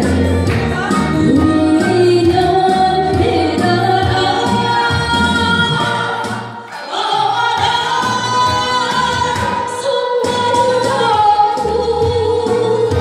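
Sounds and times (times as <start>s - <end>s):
amplified music with bass line: 0.0s - 13.0s
woman singing into a microphone: 0.7s - 13.0s.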